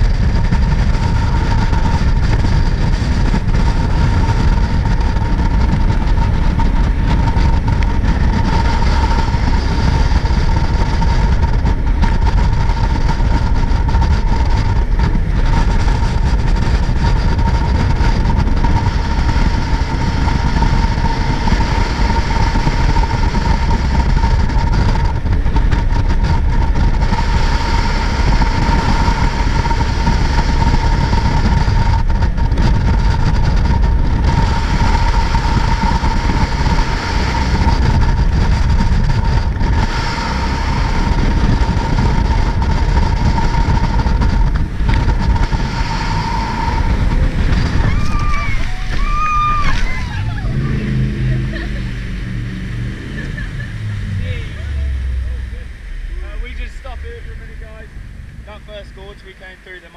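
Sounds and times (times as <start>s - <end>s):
jet boat engine rumble: 0.0s - 59.9s
steady whine: 0.0s - 59.9s.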